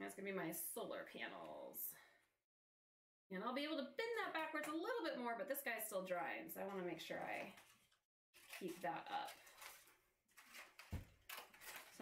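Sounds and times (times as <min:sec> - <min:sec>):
cardboard rustling: 0:07.6 - 0:12.0.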